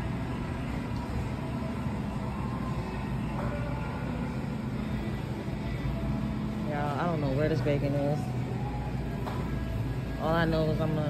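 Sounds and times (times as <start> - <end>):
supermarket hum and rumble: 0.0 - 11.0.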